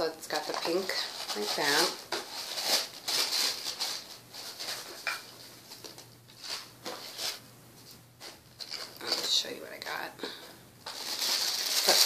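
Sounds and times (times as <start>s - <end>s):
tissue paper rustling and crinkling: 0.3s - 7.4s, 10.8s - 12.0s.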